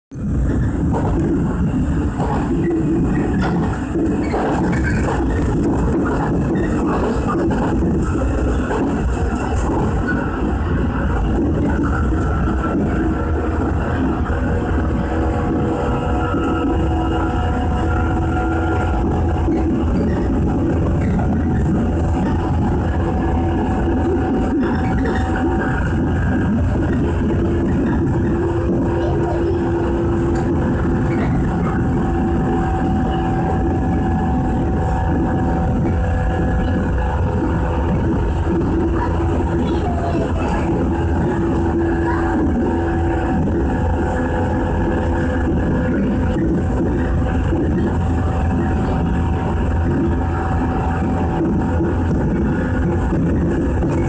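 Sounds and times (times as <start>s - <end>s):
train running noise rumble: 0.0s - 54.0s.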